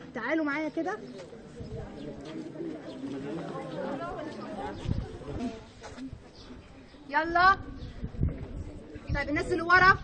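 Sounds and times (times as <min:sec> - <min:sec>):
faint voices of people: 0:00.0 - 0:10.0.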